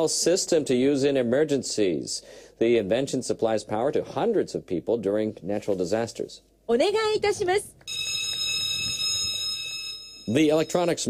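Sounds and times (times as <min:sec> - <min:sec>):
high electronic buzzer tone: 0:07.9 - 0:11.0.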